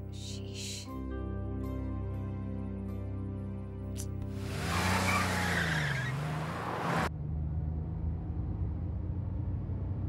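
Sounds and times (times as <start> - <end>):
car engine running: 4.2 - 7.1
tyres squealing: 4.7 - 7.1.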